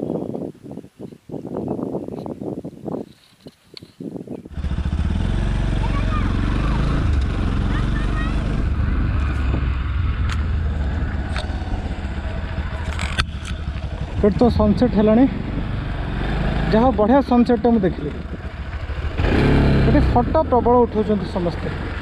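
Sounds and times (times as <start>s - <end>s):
wind rumble on microphone: 0.0s - 22.0s
motorcycle engine cruising: 4.4s - 22.0s.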